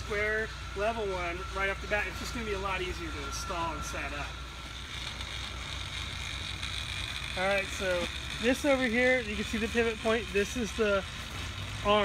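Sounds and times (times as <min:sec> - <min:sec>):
electric motor humming and whining: 0:00.0 - 0:12.0.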